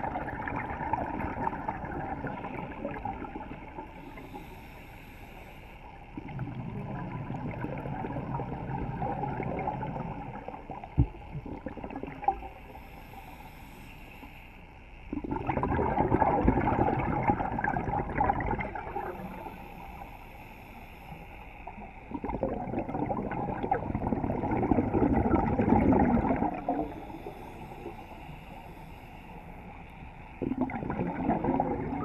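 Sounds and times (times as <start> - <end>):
exhaled bubbles rushing: 0.0 - 3.9, 6.2 - 12.5, 15.1 - 19.3, 22.1 - 27.2, 30.4 - 32.0
regulator inhale hiss: 3.8 - 6.2, 12.6 - 14.9, 18.9 - 22.0, 26.5 - 30.4.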